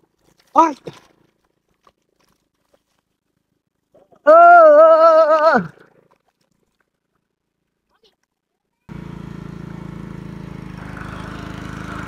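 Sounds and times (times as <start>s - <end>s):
small engine pulsing hum: 8.8s - 12.0s.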